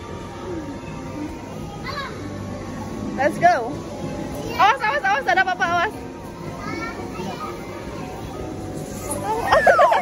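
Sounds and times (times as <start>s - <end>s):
children's voices and chatter: 0.0s - 10.0s.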